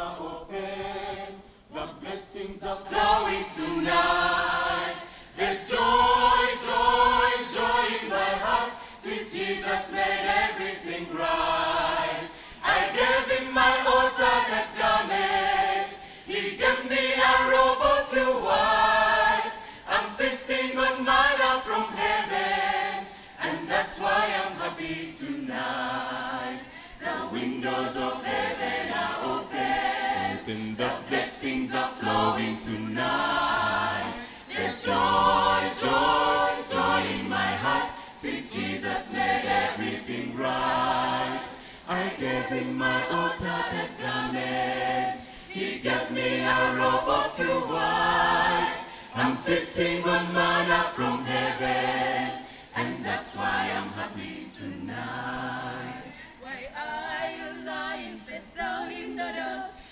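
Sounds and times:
choir singing a cappella: 0:00.0 - 0:59.9.

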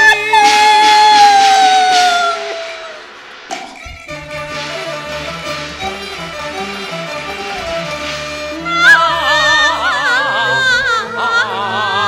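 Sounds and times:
opera singing with orchestra: 0:08.5 - 0:12.0.

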